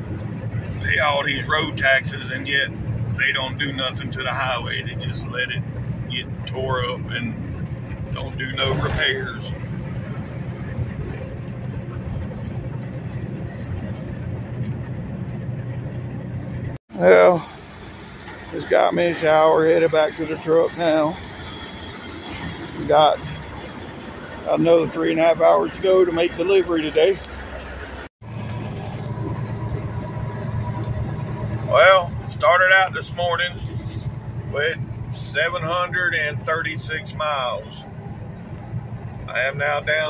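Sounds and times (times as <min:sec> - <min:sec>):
truck engine drone: 0:00.0 - 0:40.0
tyre and road noise: 0:00.0 - 0:40.0.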